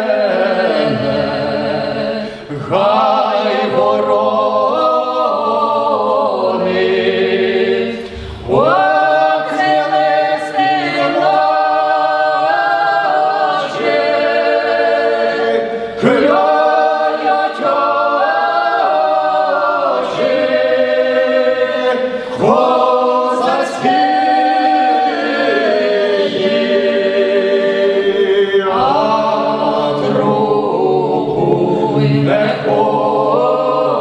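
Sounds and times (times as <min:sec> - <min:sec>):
male choir singing a cappella: 0:00.0 - 0:34.0.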